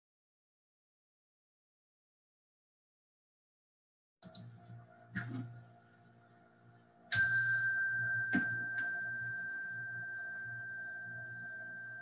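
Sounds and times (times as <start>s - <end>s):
meditation bell ringing: 7.1s - 12.0s.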